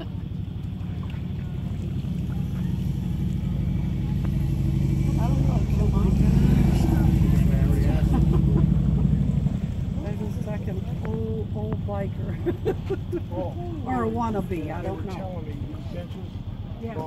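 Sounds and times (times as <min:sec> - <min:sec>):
motorcycle engine running: 0:00.0 - 0:14.3.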